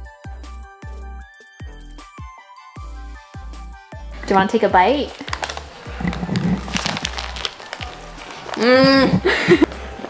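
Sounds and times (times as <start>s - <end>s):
crunching crisp waffle: 5.1s - 10.0s.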